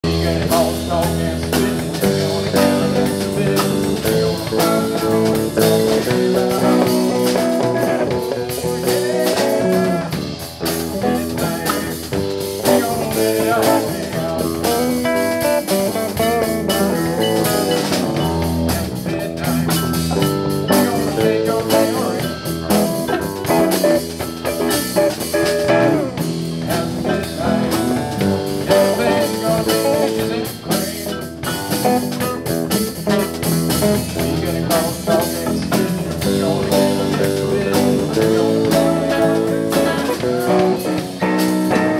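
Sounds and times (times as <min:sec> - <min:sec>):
live rock band playing: 0:00.0 - 0:41.9.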